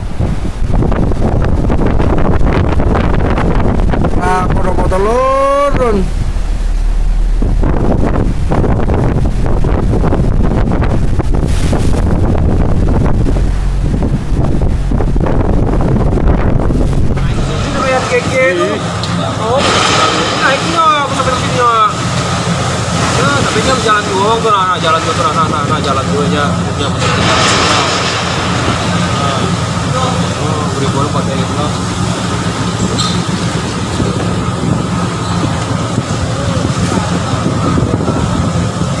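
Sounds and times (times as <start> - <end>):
rough sea: 0.0 - 39.0
wind buffeting microphone: 0.0 - 39.0
indistinct voices: 4.2 - 10.1, 12.9 - 39.0.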